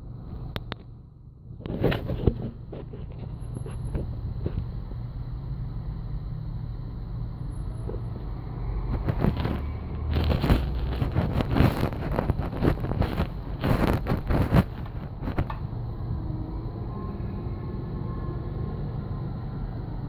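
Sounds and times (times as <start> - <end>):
traffic engine rumble: 0.0 - 20.0
bus passing: 2.5 - 20.0
wind buffeting microphone: 8.0 - 16.2.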